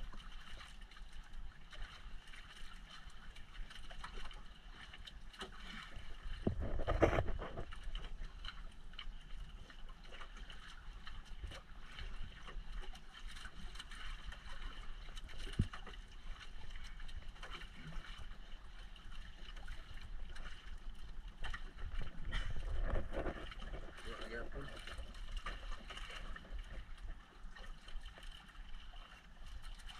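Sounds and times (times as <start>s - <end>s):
water noise: 0.0s - 29.9s
wind rumbling on microphone: 6.4s - 8.0s, 21.5s - 27.2s.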